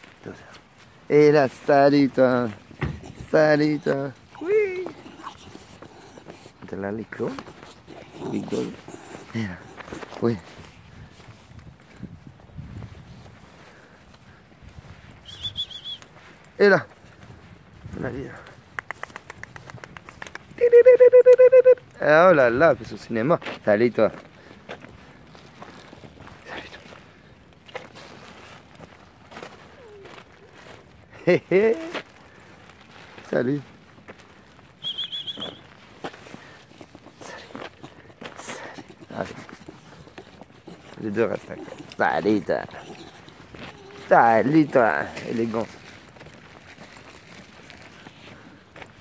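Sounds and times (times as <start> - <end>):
footsteps on gravel: 0.0 - 15.0, 22.4 - 49.0
bird trilled call: 34.8 - 35.6.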